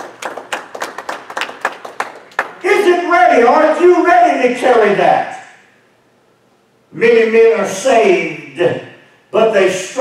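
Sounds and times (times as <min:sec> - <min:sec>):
hand claps echoing: 0:00.0 - 0:02.6.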